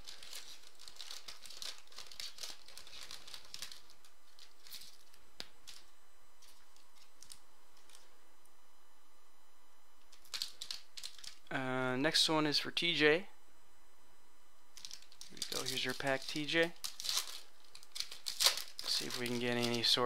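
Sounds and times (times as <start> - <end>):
foil wrapper crinkling: 0.0 - 8.1, 10.1 - 11.5, 14.7 - 20.0
cards clicking: 14.8 - 19.9.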